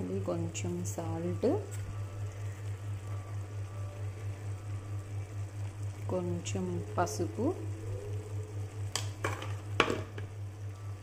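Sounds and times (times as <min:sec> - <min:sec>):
throbbing low hum: 0:00.0 - 0:11.0.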